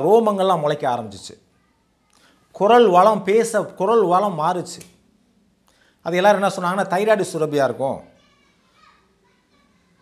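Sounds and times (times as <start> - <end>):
faint distant voices: 0.0 - 3.9, 7.4 - 10.0.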